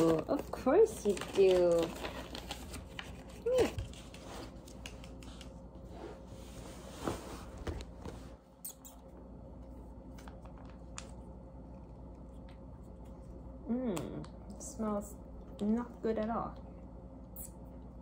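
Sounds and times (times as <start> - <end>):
plastic pouch crinkling and tearing: 0.8 - 3.6.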